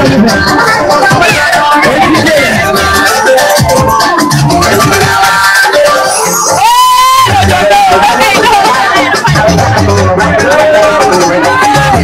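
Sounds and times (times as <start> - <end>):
loud dance music with bass: 0.0 - 12.0
person singing: 0.0 - 12.0.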